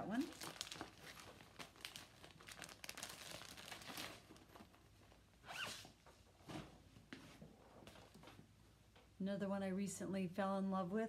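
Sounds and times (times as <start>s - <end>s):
plastic packaging crinkling: 0.0s - 5.3s.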